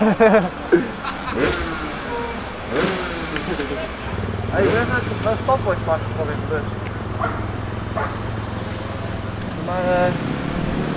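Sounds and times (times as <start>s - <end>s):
dirt bike engine revving: 1.0s - 10.9s.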